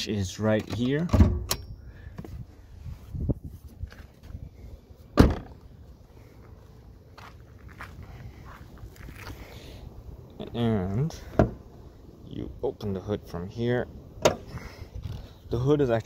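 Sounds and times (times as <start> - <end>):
car door shutting: 5.1 - 5.6
footsteps: 5.4 - 9.5.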